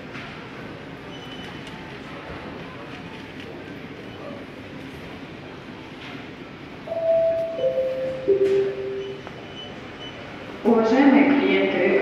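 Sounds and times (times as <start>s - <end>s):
shop background hum: 0.0s - 12.0s
public address chime: 6.9s - 9.8s.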